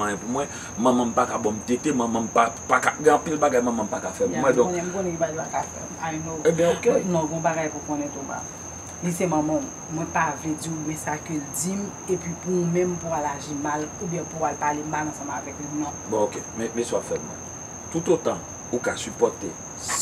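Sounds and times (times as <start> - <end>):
crickets trilling: 0.0 - 20.0
woman speaking: 4.2 - 16.0.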